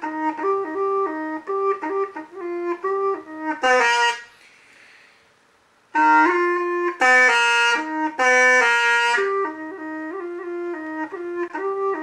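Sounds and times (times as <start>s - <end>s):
bamboo pipe playing: 0.0s - 5.0s, 5.9s - 12.0s.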